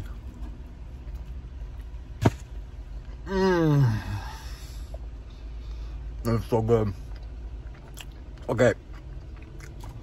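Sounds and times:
man chewing food: 0.0 - 2.2, 6.9 - 10.0
low steady hum: 0.0 - 10.0.

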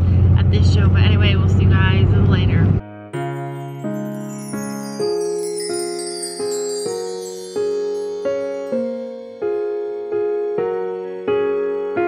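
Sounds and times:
road and engine drone in car: 0.0 - 2.8
woman talking: 0.4 - 2.8.

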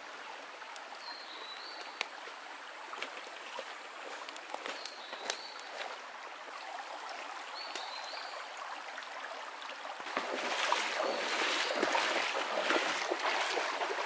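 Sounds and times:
stream running over rocks: 0.0 - 14.0
feet splashing through water: 2.2 - 6.1, 10.0 - 14.0.

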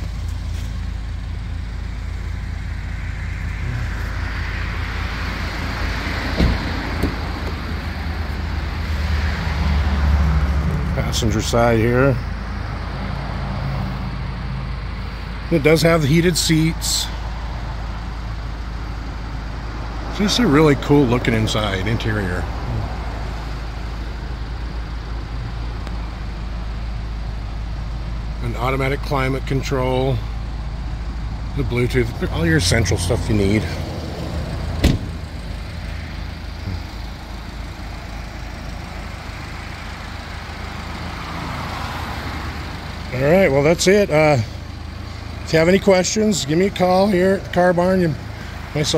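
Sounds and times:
car engine idling inside cabin: 0.0 - 4.2, 34.4 - 48.9
car engine idling: 0.0 - 48.9.

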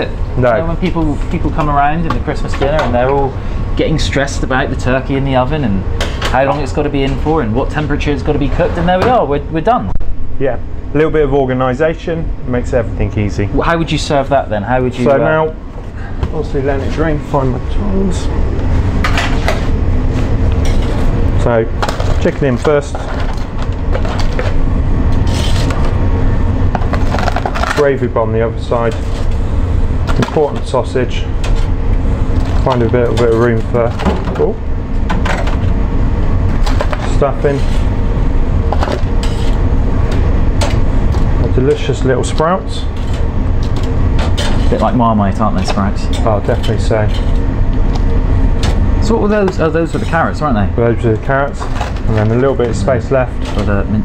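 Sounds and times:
frying range rumble: 0.0 - 54.0
low hum of shop equipment: 0.0 - 54.0.

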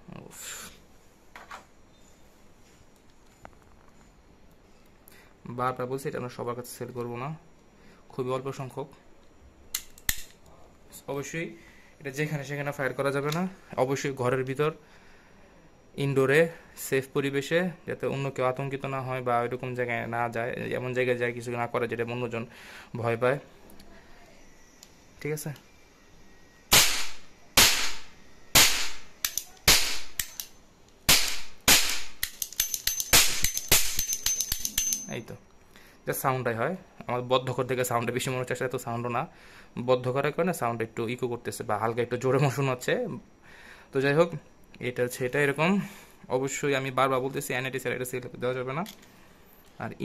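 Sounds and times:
metallic clicks of toy revolver: 9.7 - 10.4, 29.2 - 30.6, 32.1 - 35.1
toy revolver bangs: 26.7 - 30.4, 31.1 - 35.0.

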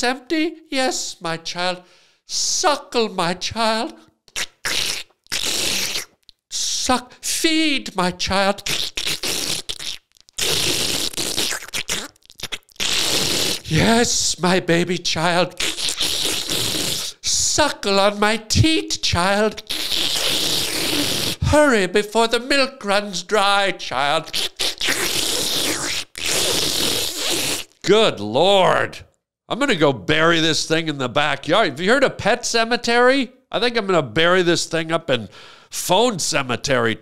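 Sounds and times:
person speaking: 0.0 - 4.1, 6.5 - 8.8, 13.6 - 15.7, 17.0 - 19.8, 21.4 - 24.6, 27.8 - 37.0
mouth sucking and slurping: 4.3 - 7.2, 8.6 - 14.4, 15.3 - 17.4, 18.9 - 21.5, 24.2 - 27.8.

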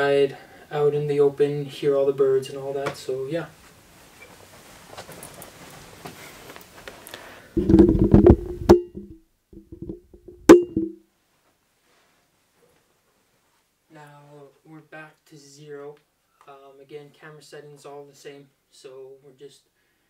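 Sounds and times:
faint hiss: 0.0 - 7.6, 11.1 - 20.0
microphone handling knocks and clicks: 7.6 - 11.0.

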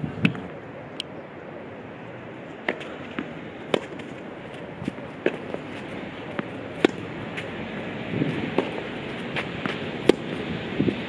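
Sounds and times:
tennis ball bouncing: 2.5 - 11.0
racket striking tennis ball: 2.6 - 11.0.

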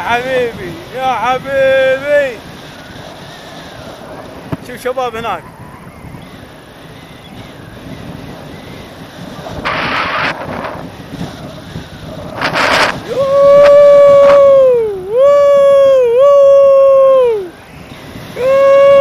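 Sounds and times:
wind rushing over microphone: 0.0 - 19.0
man yelling: 13.0 - 17.5, 18.4 - 19.0.

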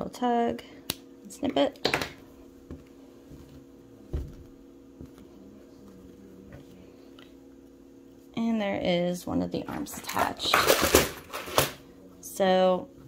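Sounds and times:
steady low hum: 0.0 - 13.0
soft thump: 4.1 - 4.5.

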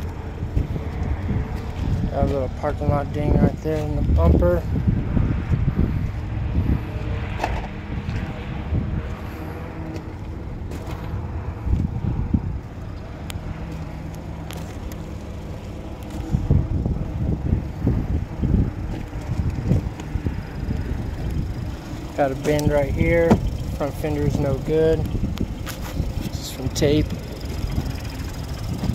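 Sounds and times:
car engine idling: 0.0 - 28.9
wind on microphone: 0.0 - 28.9.

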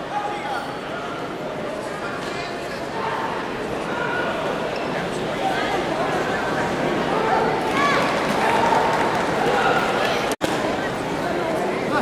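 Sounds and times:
crowd chatter in echoing hall: 0.0 - 12.0.

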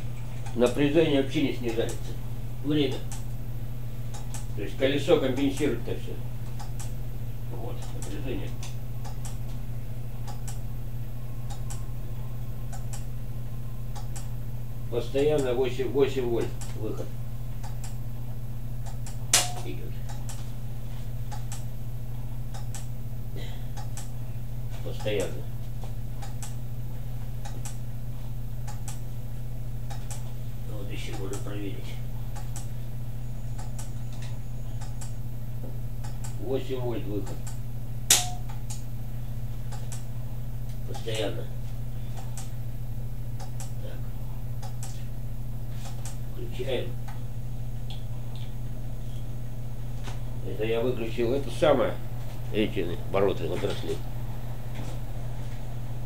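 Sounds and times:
low machine hum: 0.0 - 56.0.

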